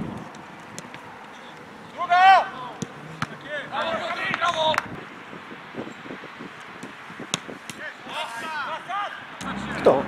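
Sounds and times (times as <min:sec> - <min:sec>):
players shouting: 0:01.9 - 0:04.9.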